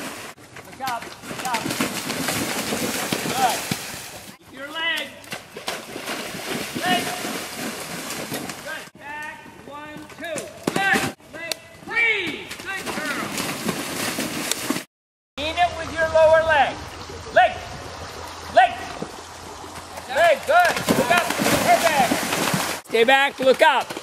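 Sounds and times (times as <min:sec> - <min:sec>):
outdoor background noise: 0:00.0 - 0:14.8, 0:15.4 - 0:24.0.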